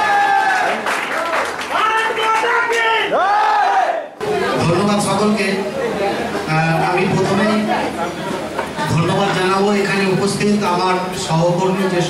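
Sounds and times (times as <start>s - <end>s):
performers shouting in unison: 1.7s - 4.2s.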